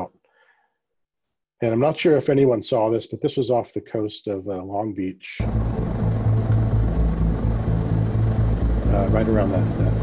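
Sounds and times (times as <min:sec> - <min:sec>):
aircraft engine drone: 0:05.4 - 0:10.0.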